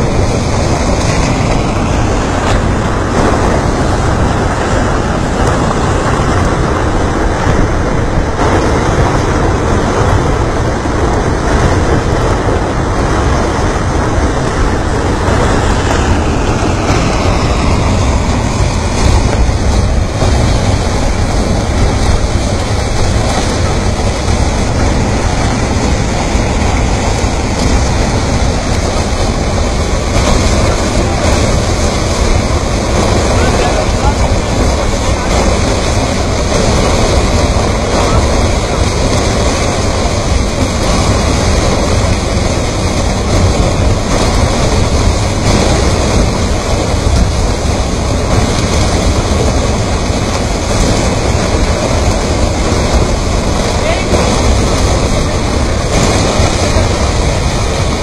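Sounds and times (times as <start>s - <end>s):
flood torrent rushing with stones: 0.0s - 58.0s.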